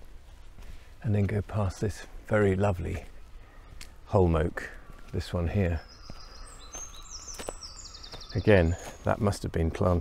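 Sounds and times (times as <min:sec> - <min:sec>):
faint outdoor background noise: 0:00.0 - 0:10.0
songbird singing: 0:00.0 - 0:10.0.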